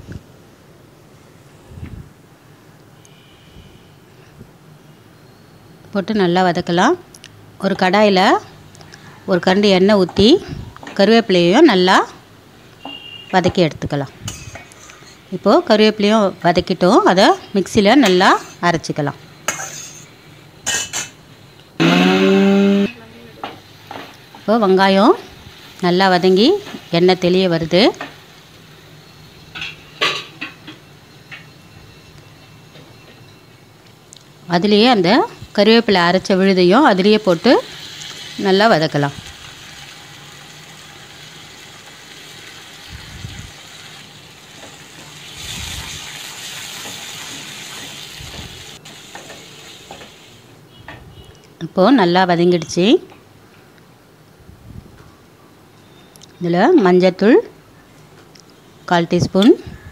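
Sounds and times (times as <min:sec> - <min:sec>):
mixer grinder running: 0:21.8 - 0:22.9
food sizzling in oil: 0:23.4 - 0:33.4, 0:34.8 - 0:50.6.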